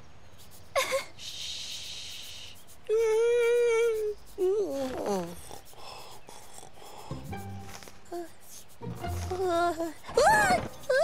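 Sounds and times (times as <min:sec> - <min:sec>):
background music: 0:07.0 - 0:10.8.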